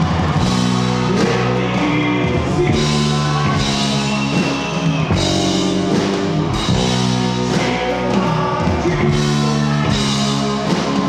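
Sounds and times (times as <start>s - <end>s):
drum kit: 0.0s - 11.0s
electric guitar chords: 0.0s - 11.0s.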